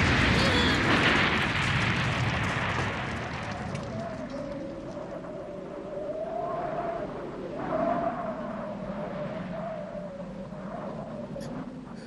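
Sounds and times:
howling wind: 0:00.0 - 0:12.0.

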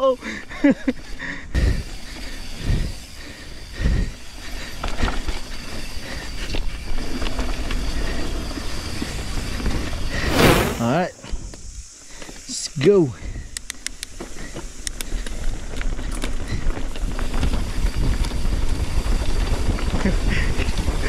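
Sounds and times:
mountain bike tyre and wind rush: 0:00.0 - 0:21.0.

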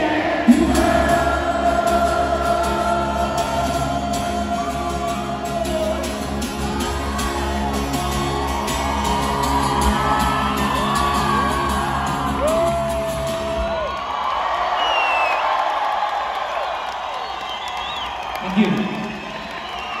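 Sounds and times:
crowd cheering and whooping: 0:00.0 - 0:20.0
loud yell near microphone: 0:03.0 - 0:14.8
whistle from crowd: 0:09.2 - 0:11.8, 0:14.8 - 0:15.6, 0:17.1 - 0:20.0.

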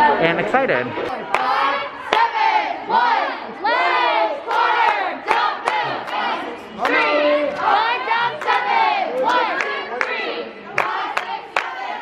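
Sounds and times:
cheerleaders shouting together: 0:01.1 - 0:12.0.

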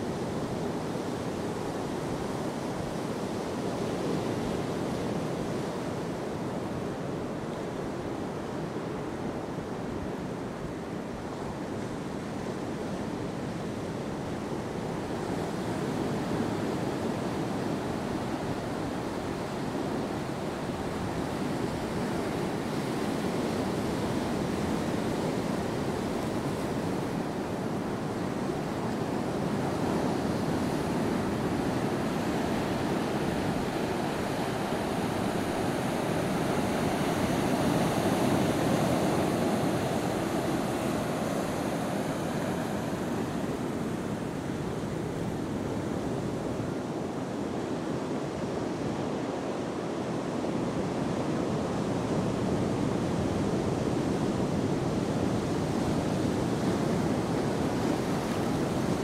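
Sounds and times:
ocean surf breaking: 0:15.4 - 0:48.0.

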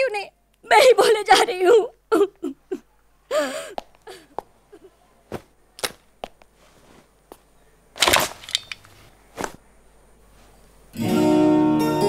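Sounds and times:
clattering rustle: 0:08.0 - 0:09.6.

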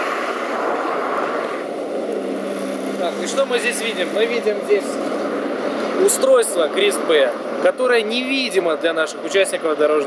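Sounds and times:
car passing by: 0:00.0 - 0:07.1.

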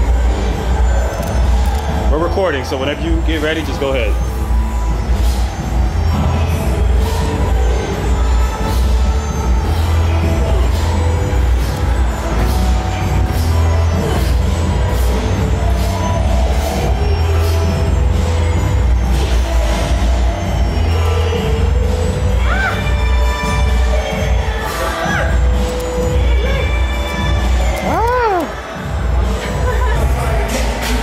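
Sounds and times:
music with heavy bass: 0:00.0 - 0:31.0.

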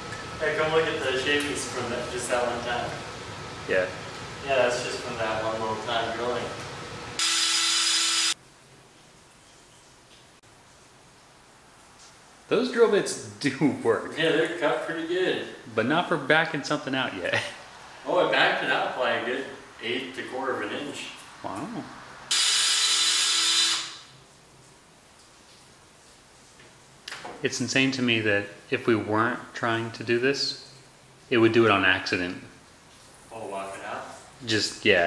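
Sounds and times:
faint room noise: 0:00.0 - 0:07.1, 0:08.4 - 0:35.0
power drill motor whine: 0:07.2 - 0:08.4, 0:22.3 - 0:24.1.

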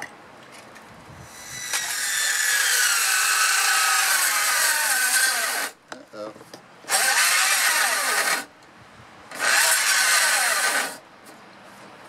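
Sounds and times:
cordless drill whining: 0:01.4 - 0:05.8, 0:06.9 - 0:08.5, 0:09.3 - 0:11.0.

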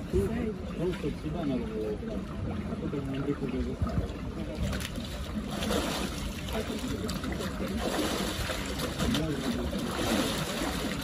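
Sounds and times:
water splashing and churning: 0:00.0 - 0:11.0
people talking: 0:06.4 - 0:08.0, 0:08.9 - 0:10.3.

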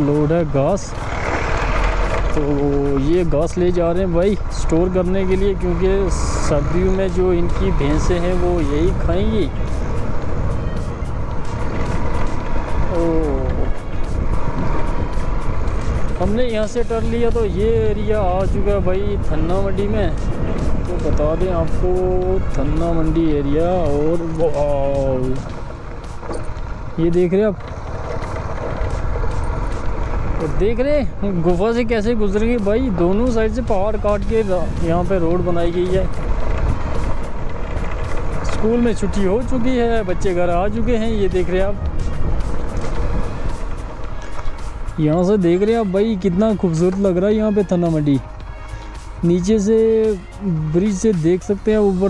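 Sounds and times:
motorcycle engine running: 0:00.0 - 0:52.0
wind rush on microphone: 0:00.0 - 0:52.0.

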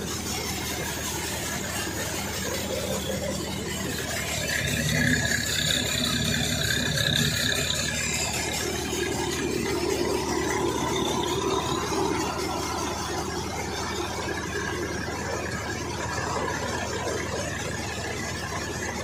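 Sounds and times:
machine whining tones: 0:00.0 - 0:19.0
thresher and tractor drone: 0:00.0 - 0:19.0.

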